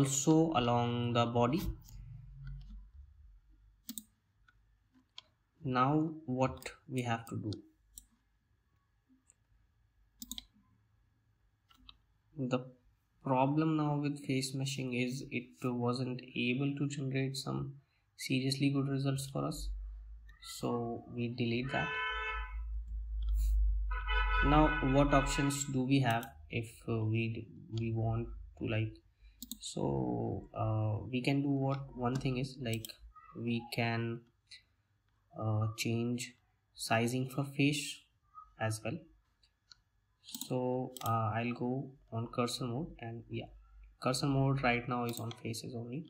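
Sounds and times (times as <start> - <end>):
person speaking: 0.0 - 2.9, 5.6 - 7.7, 12.3 - 22.0, 24.4 - 34.7, 35.4 - 39.1, 40.2 - 46.0
computer mouse clicks: 3.8 - 5.4, 10.2 - 10.6, 23.2 - 23.6, 29.4 - 29.7, 31.7 - 33.0, 39.4 - 41.2, 45.0 - 45.5.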